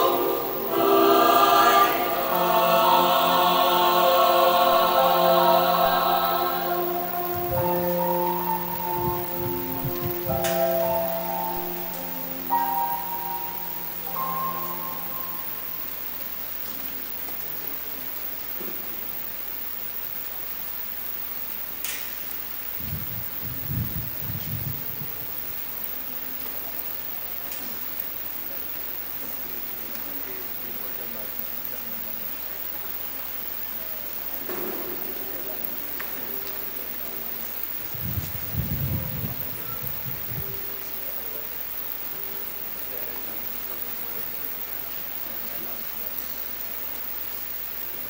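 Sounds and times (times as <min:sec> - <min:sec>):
church hymn chords: 0:00.0 - 0:18.0, 0:34.3 - 0:45.6
room tone hiss: 0:00.0 - 0:48.0.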